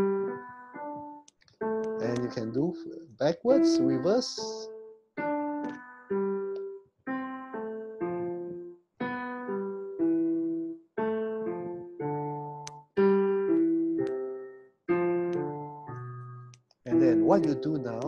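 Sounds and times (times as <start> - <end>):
piano playing arpeggios: 0.0 - 18.0.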